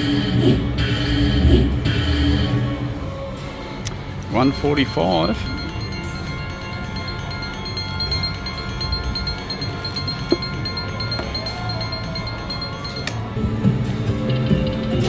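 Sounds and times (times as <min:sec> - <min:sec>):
poker machine win chimes: 0:04.4 - 0:15.0.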